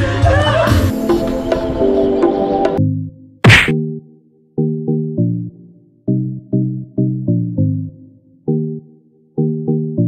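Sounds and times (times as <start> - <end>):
whoosh and hit effect: 3.4 - 3.8.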